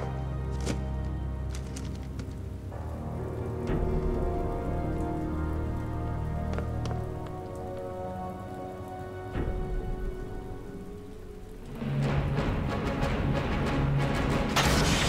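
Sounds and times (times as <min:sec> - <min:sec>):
rain falling: 0:00.0 - 0:15.0.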